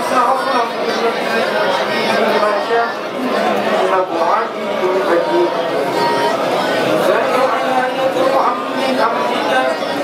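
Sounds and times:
men reciting prayers together: 0.0s - 10.0s
person reading into a microphone: 0.0s - 10.0s.

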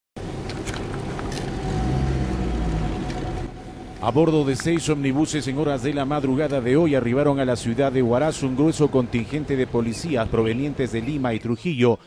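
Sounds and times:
car engine and road noise: 0.2s - 11.4s
faint whine: 0.2s - 11.5s.

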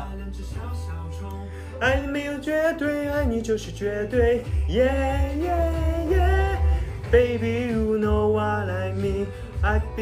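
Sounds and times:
bass line: 0.0s - 10.0s
man singing: 0.0s - 10.0s
pop song with guitar: 0.0s - 10.0s.

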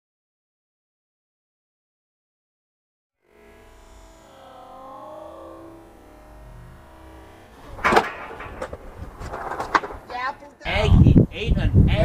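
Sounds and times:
voices: 7.6s - 12.0s
clatter: 7.7s - 10.1s
skateboard slamming onto brick: 7.8s - 10.0s.

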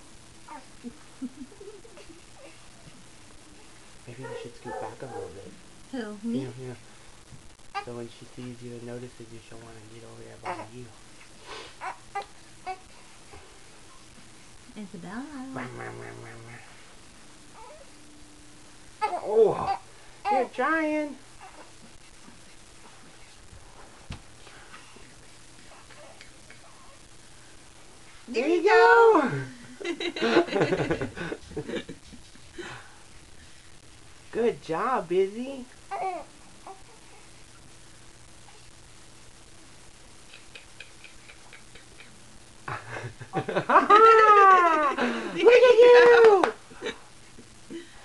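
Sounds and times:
infant cooing: 19.0s - 20.4s, 35.9s - 37.0s.

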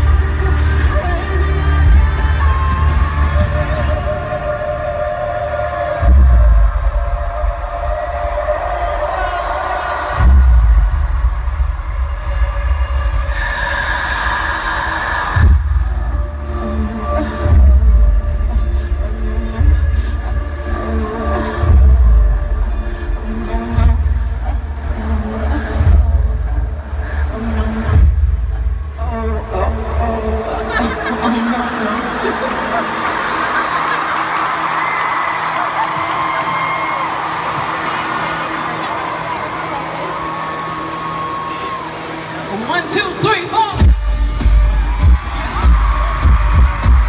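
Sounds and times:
person singing: 0.0s - 10.9s, 12.9s - 33.8s
pop concert music: 0.0s - 47.0s.

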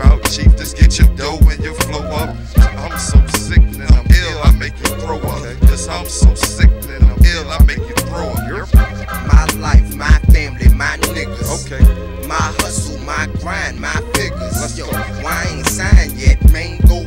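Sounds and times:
booming kick drums: 0.0s - 1.7s, 2.6s - 4.7s, 5.6s - 7.9s, 8.8s - 10.9s, 11.8s - 12.6s, 15.8s - 17.0s
rapping over a beat: 0.0s - 17.0s.

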